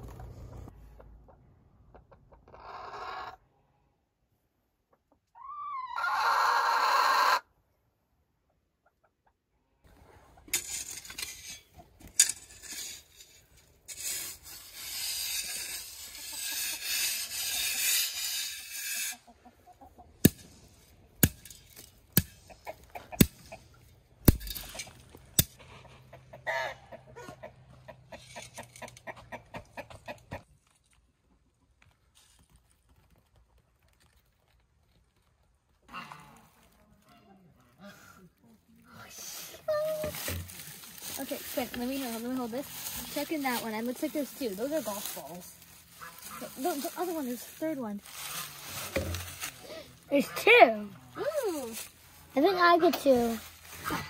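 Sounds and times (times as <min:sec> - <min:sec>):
chicken call: 0:05.4 - 0:07.4
shovel scraping gravelly dirt: 0:09.9 - 0:19.4, 0:20.2 - 0:25.8, 0:39.2 - 0:54.0.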